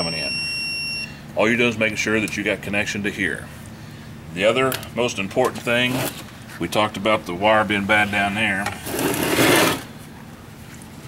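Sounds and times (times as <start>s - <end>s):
metal case scraping on workbench: 8.7s - 9.9s.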